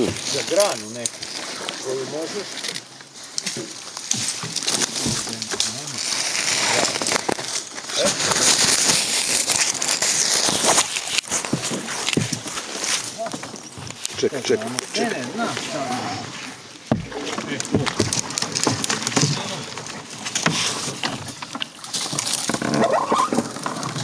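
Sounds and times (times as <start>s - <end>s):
branches scraping against a canoe: 0.0s - 24.0s.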